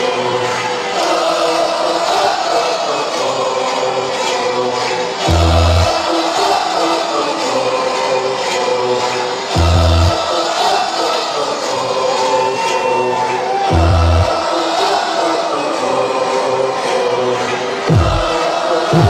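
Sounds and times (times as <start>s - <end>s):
deep bass hits: 5.3s - 5.9s, 9.6s - 10.2s, 17.9s - 18.3s
loud dance music: 5.3s - 6.1s, 9.6s - 10.3s, 12.3s - 14.5s, 17.9s - 19.0s.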